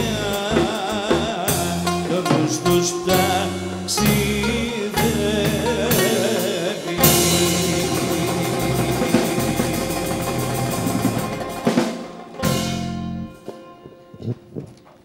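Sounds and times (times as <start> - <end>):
drum hit: 0.0 - 13.3
live band playing: 0.0 - 14.3.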